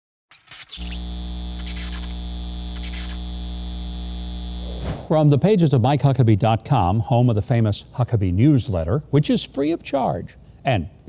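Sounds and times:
neon tubes crackling: 0.3 - 4.9
electrical buzzing hum: 0.4 - 5.1.

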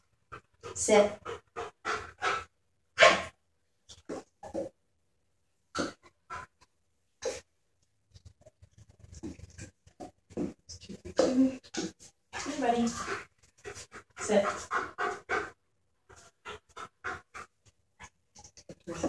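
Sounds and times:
dog panting: 0.3 - 2.5, 5.8 - 6.6, 11.8 - 18.2.

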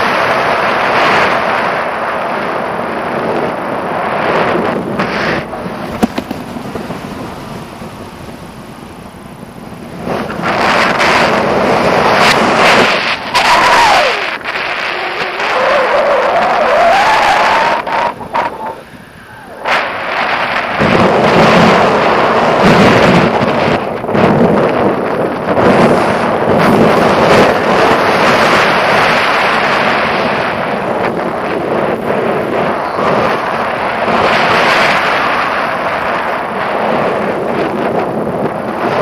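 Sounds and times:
wind buffeting microphone: 0.0 - 39.0.

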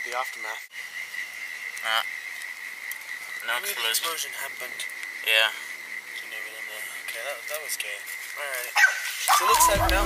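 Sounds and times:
high-pitched insect trill: 0.0 - 10.0.

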